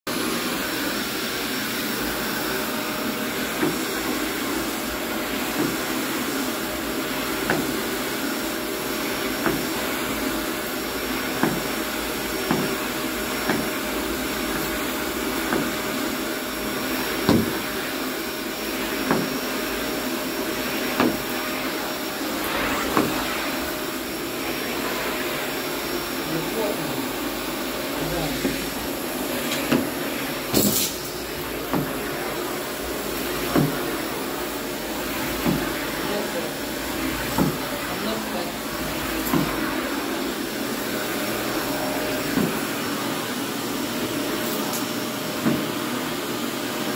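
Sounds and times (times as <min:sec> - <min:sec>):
vacuum cleaner running: 0:00.1 - 0:46.9.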